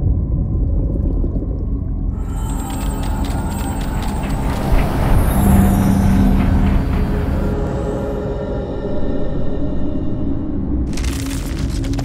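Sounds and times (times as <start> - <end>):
deep rumbling drone: 0.0 - 12.0.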